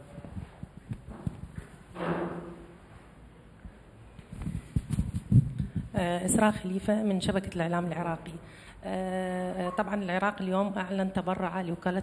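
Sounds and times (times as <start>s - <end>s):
microphone handling knocks: 0.7s - 2.7s, 4.4s - 6.0s.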